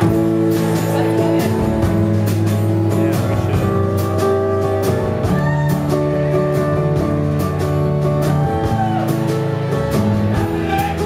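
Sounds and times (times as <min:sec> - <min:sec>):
acoustic guitar strumming: 0:00.0 - 0:11.0
double bass: 0:00.0 - 0:11.0.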